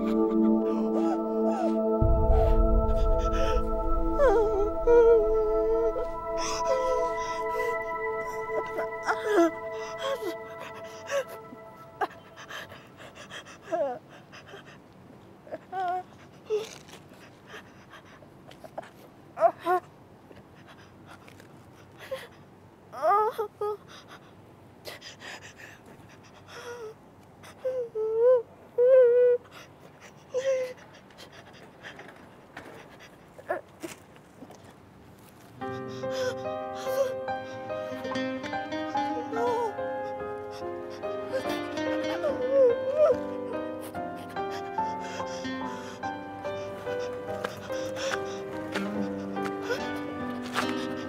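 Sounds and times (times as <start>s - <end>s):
woman moaning: 0.0s - 12.4s
woman whimpering: 0.0s - 12.8s, 36.0s - 51.0s
sustained music chord: 0.0s - 13.1s
woman gasping and panting: 0.0s - 14.7s, 35.8s - 51.0s
woman heavy breathing: 0.0s - 14.8s, 35.6s - 51.0s.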